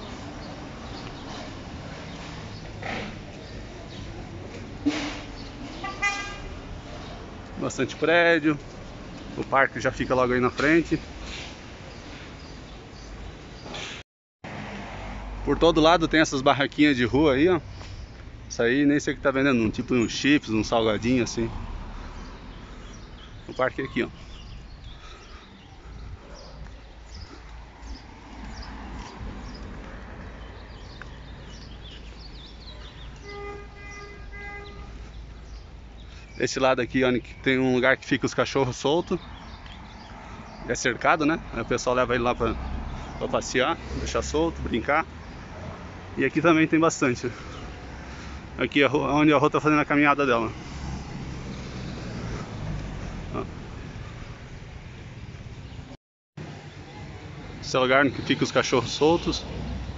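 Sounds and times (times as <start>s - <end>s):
birds chirping: 0.0s - 14.0s, 15.6s - 59.9s
street traffic noise: 0.0s - 59.9s
vehicle horn toot: 5.8s - 6.6s, 33.2s - 35.0s.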